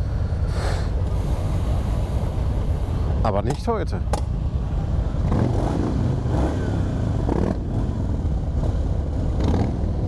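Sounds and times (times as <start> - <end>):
motorcycle engines idling: 0.0 - 10.0.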